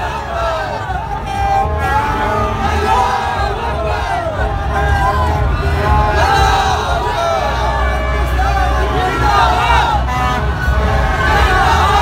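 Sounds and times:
crowd shouting and chanting: 0.0 - 12.0
low rumble: 0.0 - 12.0.

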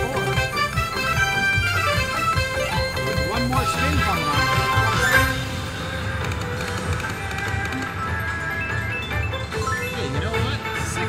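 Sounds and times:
slot machine win music: 0.0 - 11.0
win meter counting up: 0.0 - 11.0.

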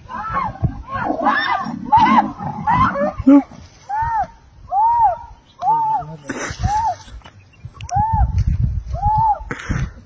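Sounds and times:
people shouting and yelling: 0.0 - 7.1, 7.8 - 9.5.

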